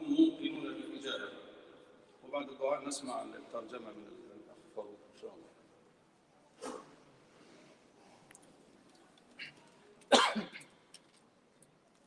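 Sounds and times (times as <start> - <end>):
person coughing: 10.1 - 10.7.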